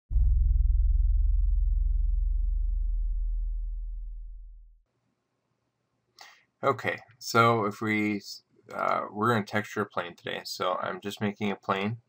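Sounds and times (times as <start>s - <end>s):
deep low boom: 0.1s - 4.8s.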